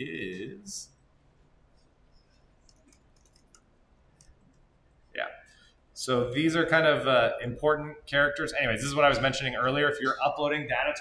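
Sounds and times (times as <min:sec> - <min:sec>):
man speaking: 0:00.0 - 0:00.9, 0:05.2 - 0:11.0
computer mouse clicks: 0:01.8 - 0:04.7.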